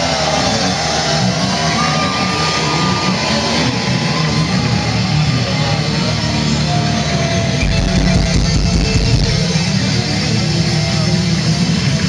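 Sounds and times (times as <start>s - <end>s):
deep bass swell: 0.0s - 12.0s
heavy metal band playing live: 0.0s - 12.0s.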